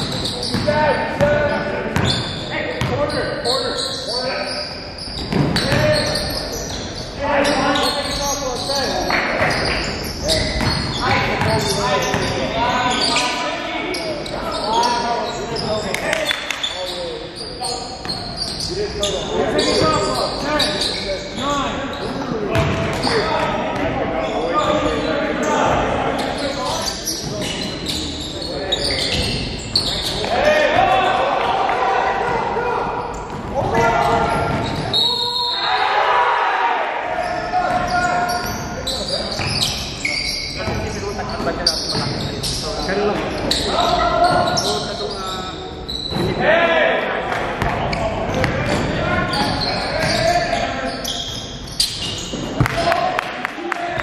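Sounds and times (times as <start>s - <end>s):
players' voices and calls: 0.0s - 54.0s.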